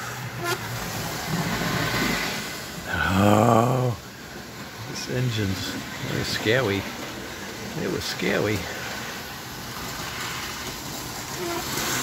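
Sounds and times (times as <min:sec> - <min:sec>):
model train wheels rumbling on rail: 0:00.0 - 0:12.0.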